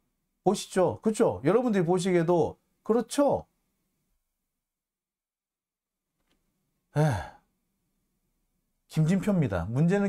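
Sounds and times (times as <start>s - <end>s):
man sighing: 6.9s - 7.5s.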